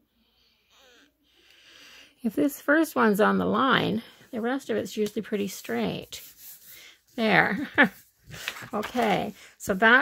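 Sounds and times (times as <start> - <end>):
faint breathing: 0.0 - 2.3, 6.6 - 7.1, 9.3 - 9.6.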